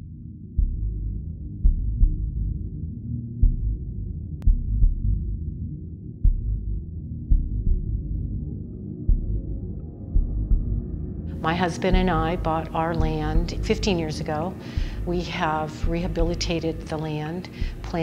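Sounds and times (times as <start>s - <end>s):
low steady drone: 0.0s - 18.0s
deep thumps: 10.2s - 10.9s.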